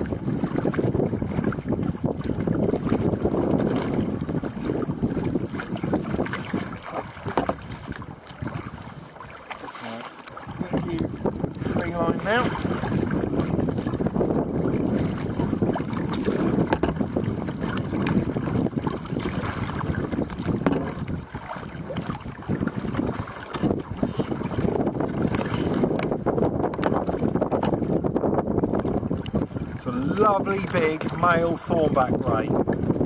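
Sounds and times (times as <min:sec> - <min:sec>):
wind noise on microphone: 0:00.0 - 0:09.6, 0:10.4 - 0:33.0
water splashing against kayak: 0:00.0 - 0:33.0.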